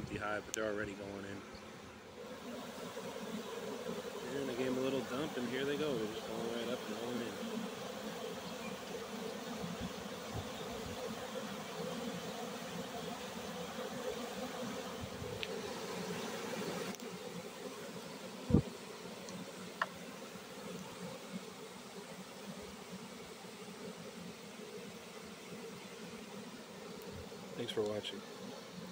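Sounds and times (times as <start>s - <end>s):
bee swarm buzzing: 0.0s - 28.9s
faint tick: 16.9s - 17.1s.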